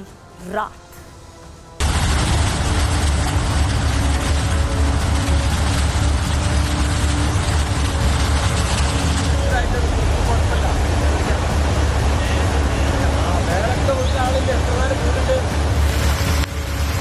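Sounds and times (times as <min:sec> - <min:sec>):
flood torrent rushing: 0:01.8 - 0:17.0.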